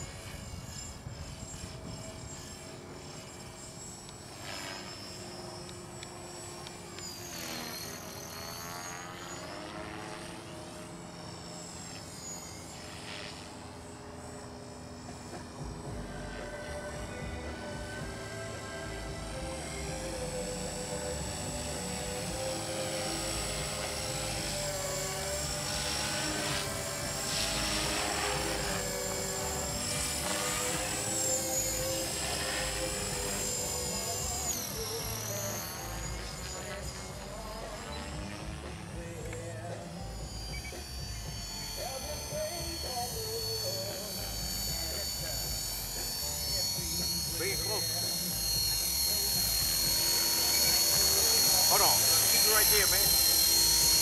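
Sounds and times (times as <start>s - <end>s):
rc helicopter motor whine: 0.0s - 54.0s.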